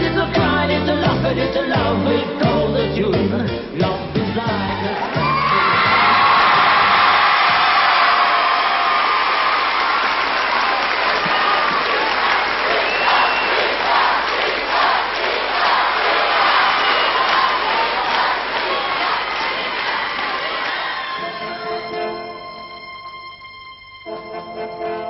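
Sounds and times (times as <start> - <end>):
song music: 0.0 - 8.0, 19.9 - 25.0
audience applauding and cheering: 4.4 - 22.5
shrill whoops: 4.8 - 11.8, 20.6 - 21.9.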